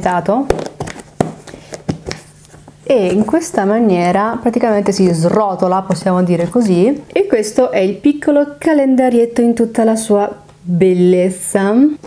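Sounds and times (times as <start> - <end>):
taps and handling of cardboard: 0.5 - 2.7.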